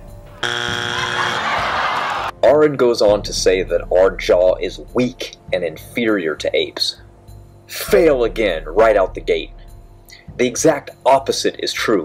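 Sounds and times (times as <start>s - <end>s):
game show buzzer: 0.4s - 2.3s.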